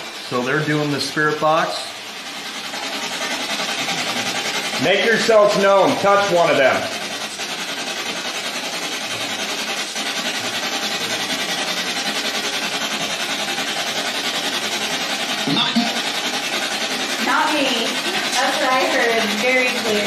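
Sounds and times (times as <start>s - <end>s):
pulsing radio static: 3.6s - 12.4s, 15.4s - 20.0s.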